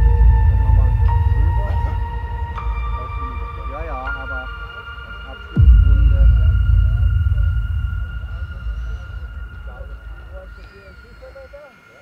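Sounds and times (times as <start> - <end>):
high whistling tones: 2.2 - 12.0.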